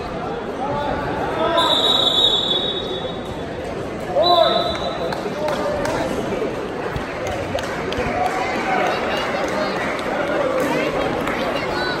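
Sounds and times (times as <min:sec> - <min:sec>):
people's voices: 0:00.0 - 0:12.0
whistle blasts: 0:01.5 - 0:03.3.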